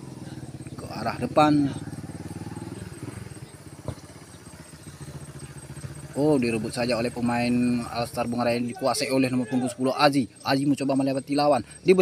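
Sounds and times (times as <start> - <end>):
small engine running: 0.0 - 12.0.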